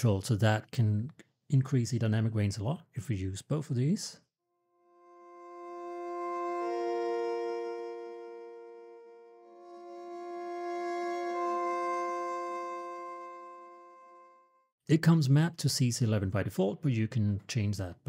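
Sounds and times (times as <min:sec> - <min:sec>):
viola playing soft sustained chord: 0:04.8 - 0:14.7.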